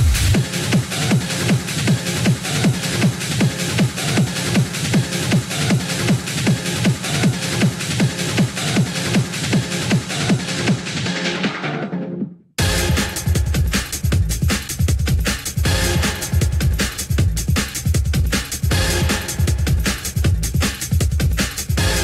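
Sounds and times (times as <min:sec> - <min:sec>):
busy hi-hats: 0:00.0 - 0:10.7, 0:12.6 - 0:22.0
techno kick drum: 0:00.0 - 0:11.8, 0:12.6 - 0:22.0.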